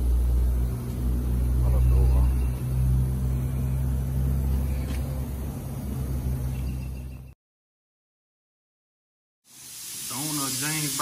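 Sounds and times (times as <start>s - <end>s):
low machinery hum: 0.0s - 7.4s.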